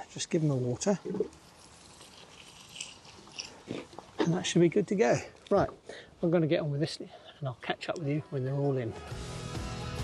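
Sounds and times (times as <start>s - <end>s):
light steady hiss: 0.0s - 9.0s
trowel scraping soil: 1.2s - 3.9s.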